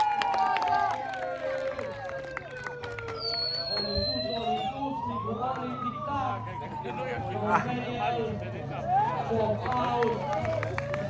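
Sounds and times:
megaphone siren wailing: 0:00.0 - 0:11.0.

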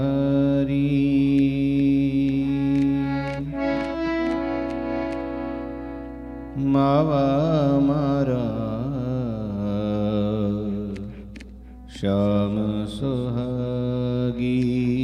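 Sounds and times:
man singing into a microphone: 0:00.0 - 0:03.8, 0:06.5 - 0:15.0
harmonium sustained notes: 0:00.0 - 0:15.0.

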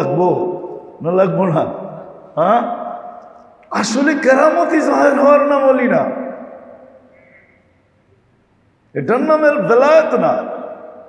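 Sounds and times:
man's amplified voice reverberating: 0:00.0 - 0:07.7, 0:08.9 - 0:11.0.

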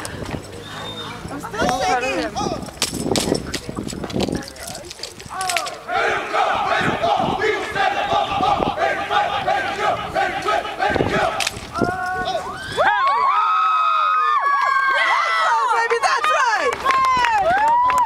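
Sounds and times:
crowd cheering and screaming: 0:11.9 - 0:18.0.

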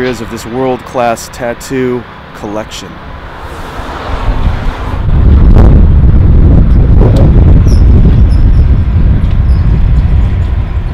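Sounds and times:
wind buffeting microphone: 0:03.2 - 0:10.9.

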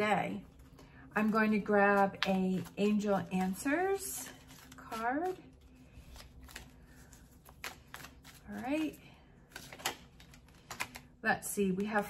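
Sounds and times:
cards being shuffled: 0:00.4 - 0:11.1.

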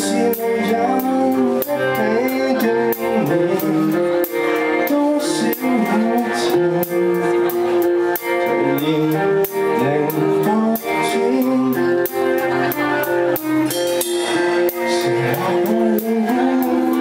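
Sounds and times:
drums with cymbal hits: 0:00.0 - 0:17.0
electric guitars: 0:00.0 - 0:17.0
man singing lead vocals: 0:00.0 - 0:17.0.

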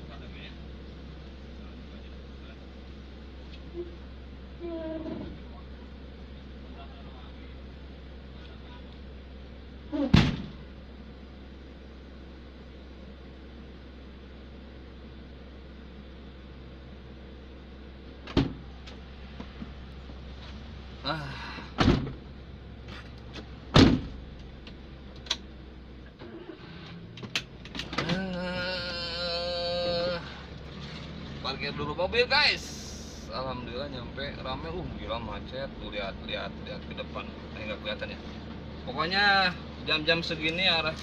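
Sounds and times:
engine idling: 0:00.0 - 0:41.0
door thumps and slams: 0:10.0 - 0:10.6, 0:18.3 - 0:18.6, 0:21.8 - 0:22.2, 0:23.7 - 0:24.2.

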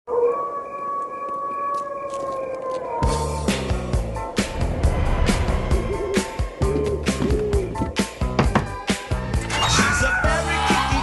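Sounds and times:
wolf howling: 0:00.1 - 0:03.9, 0:05.7 - 0:08.0.

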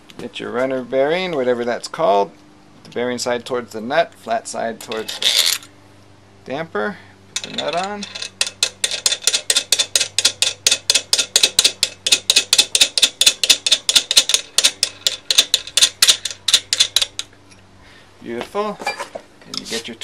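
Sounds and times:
rapid metallic clicking: 0:07.4 - 0:17.4.

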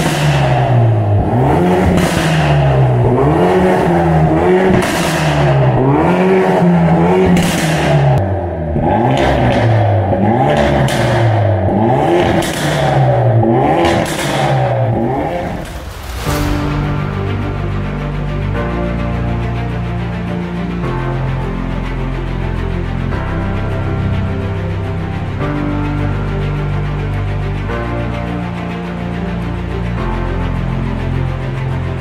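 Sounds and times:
exhaust cracks: 0:00.0 - 0:18.9
car engine revving: 0:00.0 - 0:20.9.

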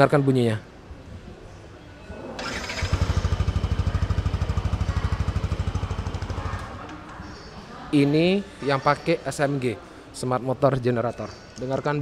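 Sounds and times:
scooter engine starting and idling: 0:02.4 - 0:06.8.

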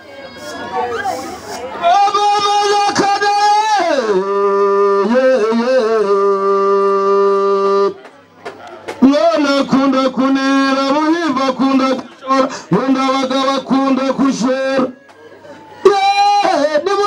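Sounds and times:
man chanting: 0:01.8 - 0:08.0, 0:09.0 - 0:15.0, 0:15.8 - 0:17.0.

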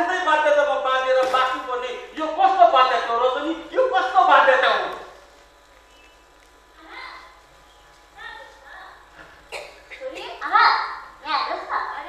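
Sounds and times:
person coughing: 0:09.2 - 0:10.4.

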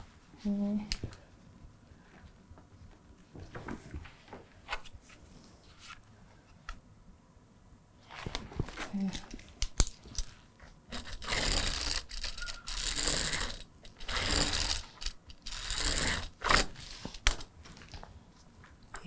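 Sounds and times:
pen scratching along ruler: 0:10.9 - 0:17.0.

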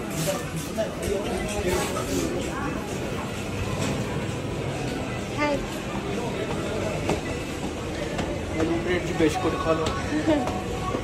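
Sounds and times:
busy shop background noise: 0:00.0 - 0:11.0
faint voices: 0:00.0 - 0:11.0.

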